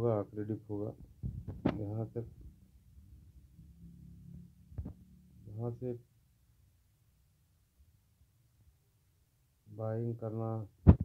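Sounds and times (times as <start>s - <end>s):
soft thump: 1.0s - 1.8s.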